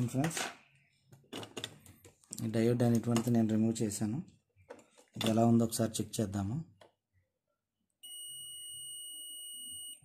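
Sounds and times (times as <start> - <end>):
multimeter continuity beep: 8.0 - 10.0.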